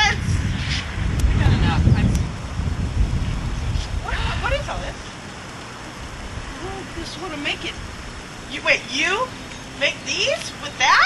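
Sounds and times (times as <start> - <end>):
wind buffeting microphone: 0.0 - 10.9.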